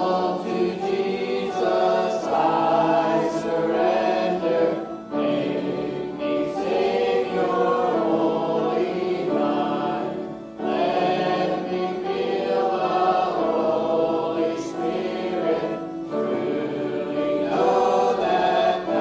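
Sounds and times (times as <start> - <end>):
congregation singing a hymn: 0.0 - 19.0.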